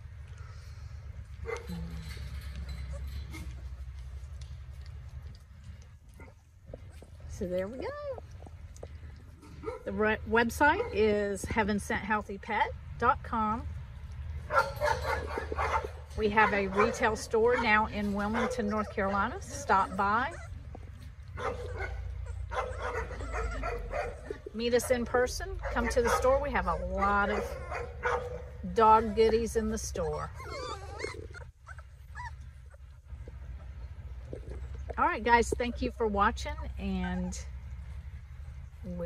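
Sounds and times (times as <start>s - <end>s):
puppies crying and yipping: 14.5s - 34.9s.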